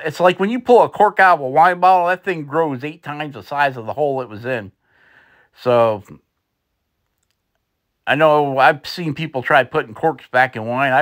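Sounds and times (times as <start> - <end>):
faint small clicks: 6.3 - 7.7.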